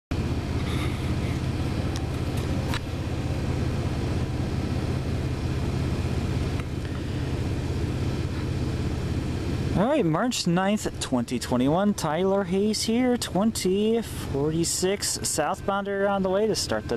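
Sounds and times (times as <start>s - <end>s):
engine idling rumble: 0.1s - 16.9s.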